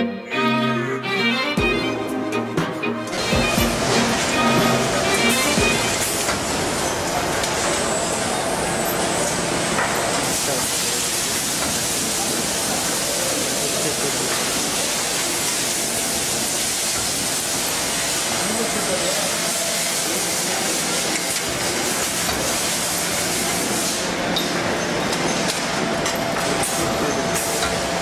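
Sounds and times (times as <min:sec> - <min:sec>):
background music: 0:00.0 - 0:06.4
packaging machine hissing: 0:03.2 - 0:24.8.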